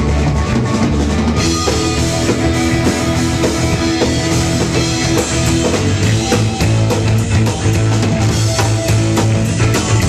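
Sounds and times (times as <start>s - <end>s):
drum kit: 0.0s - 10.0s
electric bass: 0.0s - 10.0s
electric guitar: 0.0s - 10.0s.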